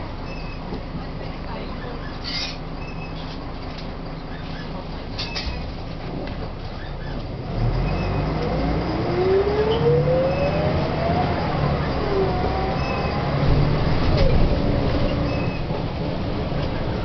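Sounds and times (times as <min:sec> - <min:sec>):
bus engine rumble: 0:00.0 - 0:17.0
drivetrain whine: 0:05.0 - 0:17.0.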